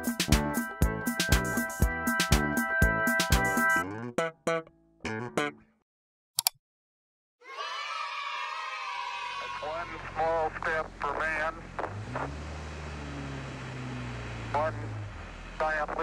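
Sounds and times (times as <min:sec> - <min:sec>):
van engine humming: 0:09.9 - 0:16.0.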